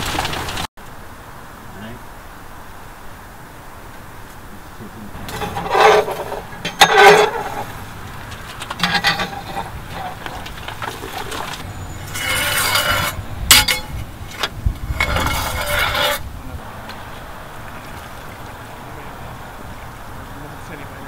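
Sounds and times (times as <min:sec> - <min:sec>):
metal rake scraping brick floor: 0:05.2 - 0:16.3.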